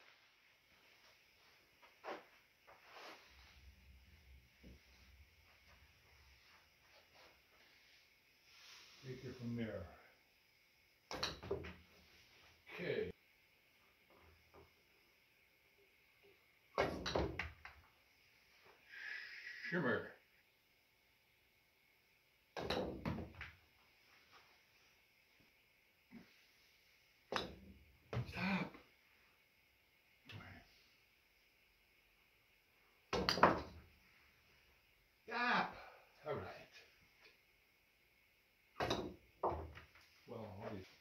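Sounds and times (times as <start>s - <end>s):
balls clacking together: 11.1s - 11.8s, 16.8s - 17.9s, 22.6s - 23.6s, 27.3s - 28.4s, 33.1s - 33.9s.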